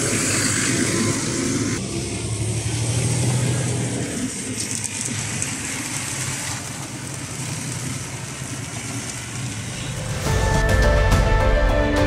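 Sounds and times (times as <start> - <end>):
truck diesel engine driving by: 0.0 - 12.0.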